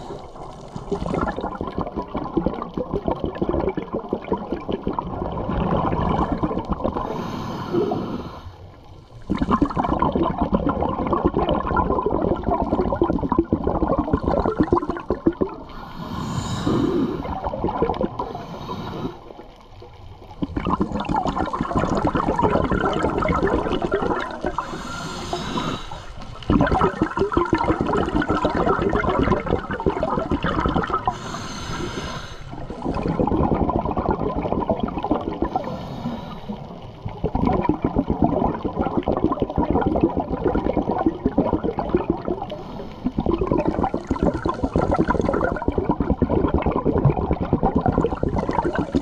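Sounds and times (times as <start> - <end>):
gurgling exhaled bubbles: 0.0 - 49.0
hissing regulator inhalations: 7.0 - 8.7, 15.6 - 17.5, 18.2 - 19.5, 24.4 - 26.5, 31.0 - 33.1, 35.5 - 36.8, 42.4 - 43.3.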